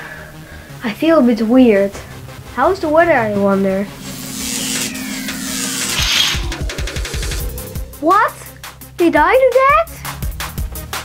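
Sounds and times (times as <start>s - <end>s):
quick low pulsing: 2.2s - 8.6s
hissing whoosh with falling tone: 2.8s - 8.8s.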